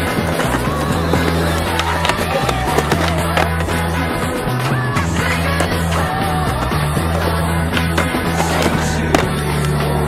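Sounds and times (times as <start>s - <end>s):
music soundtrack: 0.0s - 10.0s
skateboard grinding on concrete: 0.0s - 10.0s
skateboard rolling: 0.0s - 10.0s
skateboard landing clack: 7.7s - 9.8s.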